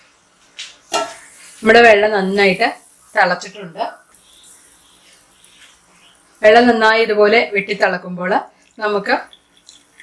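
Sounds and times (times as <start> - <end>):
water bubbling in pot: 1.0 - 10.0
woman speaking: 1.6 - 4.0, 6.4 - 9.3.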